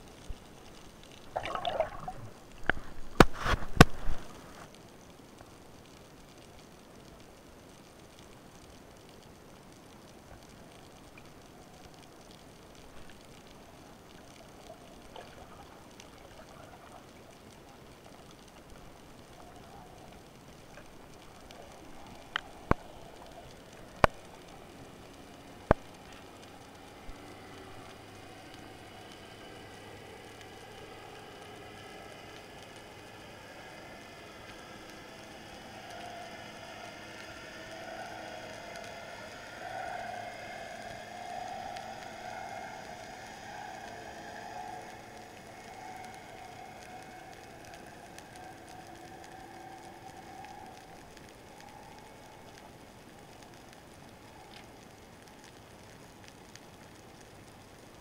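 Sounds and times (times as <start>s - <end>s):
faint crackling underwater hiss: 0.0s - 58.0s
wavering hum: 19.2s - 53.6s.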